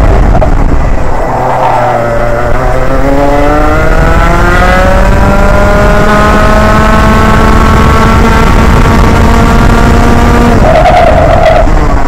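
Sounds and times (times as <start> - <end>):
kart engine accelerating: 0.0 - 12.0.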